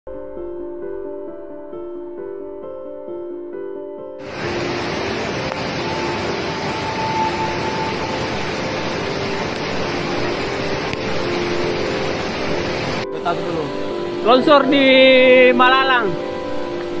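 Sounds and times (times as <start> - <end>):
soft background music: 0.1 - 17.0
loud rushing noise: 4.2 - 13.1.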